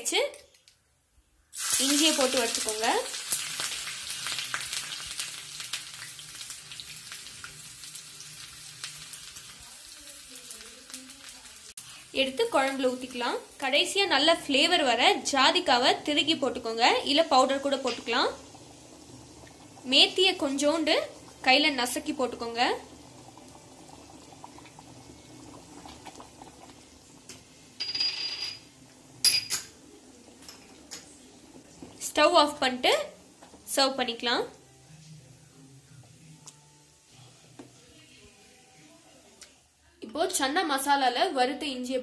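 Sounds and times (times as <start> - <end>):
pot simmering with bubbling: 1.5 - 27.9, 28.6 - 35.6
hot oil sizzling and popping: 1.5 - 35.3
woman speaking: 32.0 - 34.6, 39.9 - 42.0.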